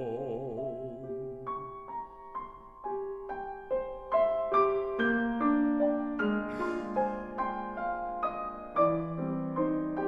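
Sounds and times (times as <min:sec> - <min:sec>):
grand piano notes: 0:00.0 - 0:10.0.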